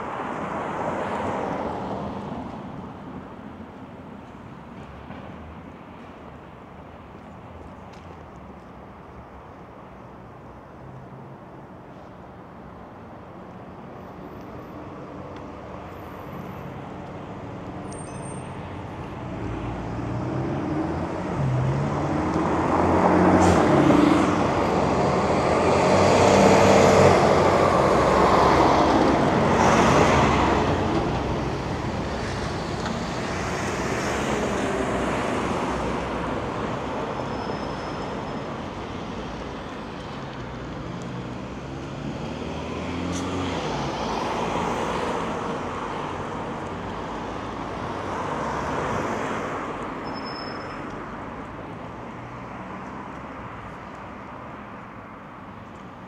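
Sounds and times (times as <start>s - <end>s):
cars passing on a street: 0.0s - 56.0s.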